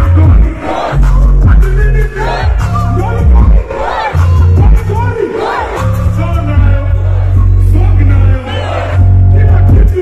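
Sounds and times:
bass-heavy backing track: 0:00.0 - 0:10.0
rapper shouting: 0:00.0 - 0:10.0
crowd yelling: 0:00.6 - 0:01.0, 0:02.2 - 0:02.7, 0:03.4 - 0:06.0, 0:08.4 - 0:09.3.

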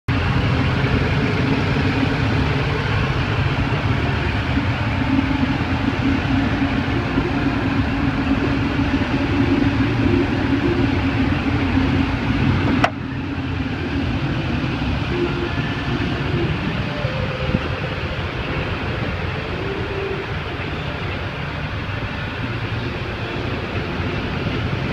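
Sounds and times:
car engine idling: 0:00.1 - 0:24.9.

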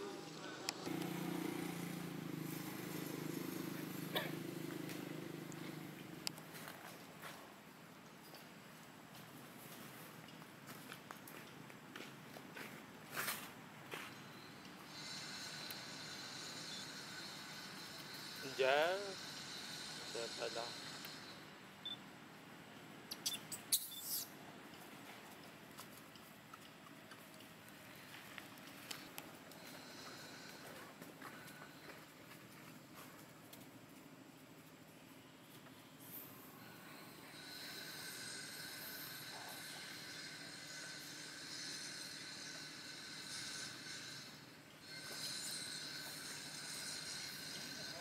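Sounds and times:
insects buzzing high-pitched: 0:14.8 - 0:21.4, 0:36.0 - 0:48.0
macaque squeaks and clicks: 0:23.1 - 0:24.3.

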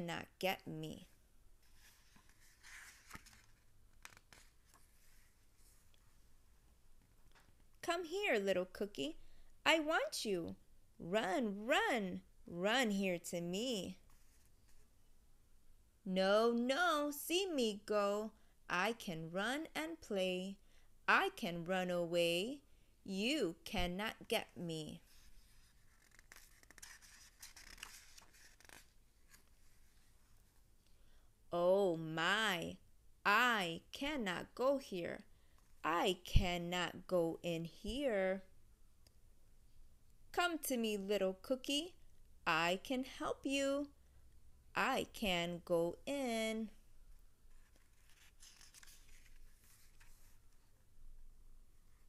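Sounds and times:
paper book pages scratching: 0:01.6 - 0:06.0, 0:25.0 - 0:30.2, 0:47.5 - 0:50.7.

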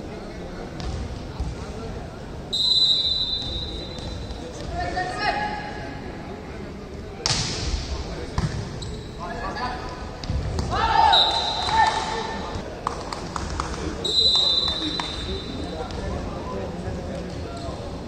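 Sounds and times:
referee's whistle blast: 0:02.5 - 0:04.1, 0:11.0 - 0:11.8, 0:14.0 - 0:15.5.

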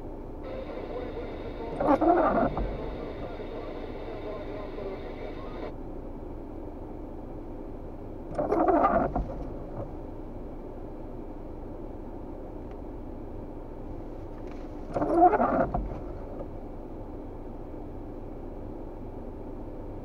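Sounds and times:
faint high whine: 0:00.0 - 0:05.8
car engine idling: 0:00.4 - 0:05.7.

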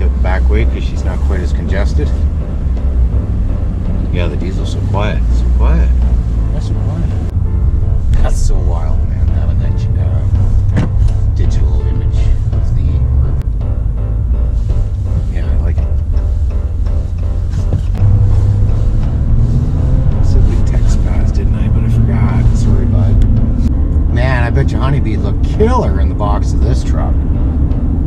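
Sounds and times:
music playing: 0:00.0 - 0:28.0
truck rumbling on road: 0:00.0 - 0:28.0.

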